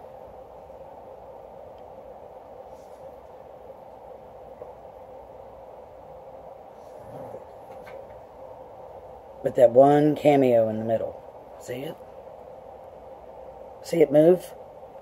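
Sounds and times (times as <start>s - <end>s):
room hum with faint hiss: 0.0s - 15.0s.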